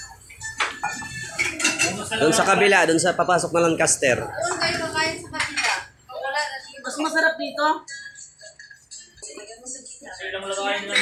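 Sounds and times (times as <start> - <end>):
dishes and cutlery clinking: 0.0 - 2.5, 5.2 - 6.0, 10.8 - 11.0.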